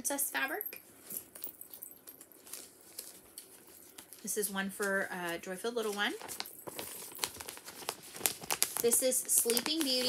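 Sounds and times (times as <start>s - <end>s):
fabric pouch rustling: 0.9s - 10.0s.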